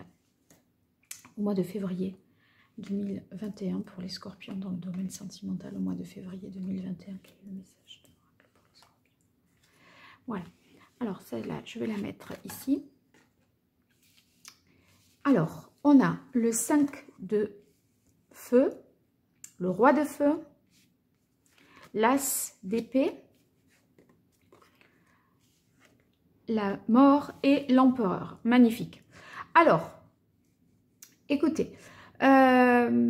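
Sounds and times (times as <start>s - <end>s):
cards rustling on cloth: 6.0s - 15.3s, 22.8s - 26.1s.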